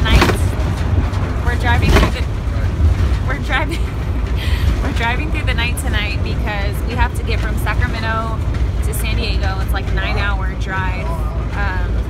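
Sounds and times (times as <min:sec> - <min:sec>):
woman speaking: 0:00.0 - 0:00.6, 0:01.4 - 0:02.3, 0:03.2 - 0:03.9, 0:04.7 - 0:12.0
van driving rumble: 0:00.0 - 0:12.0.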